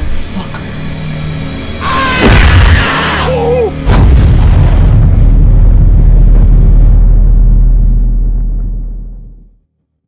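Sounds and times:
heavy boom-like hit: 0:02.1 - 0:03.0, 0:03.8 - 0:08.8
deep low rumble: 0:03.9 - 0:09.8.

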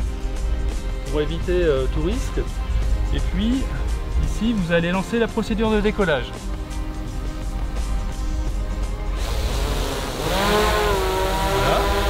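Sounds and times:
background music: 0:00.0 - 0:12.0
drone propellers whining: 0:06.7 - 0:12.0.

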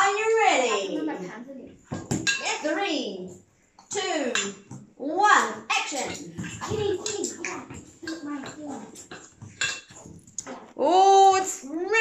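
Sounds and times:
tableware clinking: 0:01.9 - 0:02.7, 0:03.9 - 0:04.8, 0:05.9 - 0:10.4
person speaking: 0:03.9 - 0:09.2.

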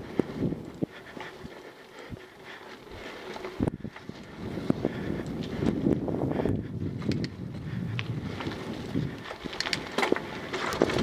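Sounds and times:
bike rattling and knocking: 0:00.0 - 0:11.0
wind buffeting microphone: 0:00.0 - 0:11.0
tyres rumbling over dirt: 0:07.0 - 0:11.0.

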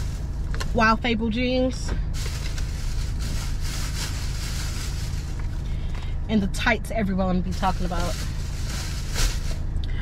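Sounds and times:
rustling clothes and packaging: 0:00.0 - 0:00.9, 0:02.1 - 0:05.8, 0:07.5 - 0:09.7
low rumble inside car: 0:00.0 - 0:10.0.

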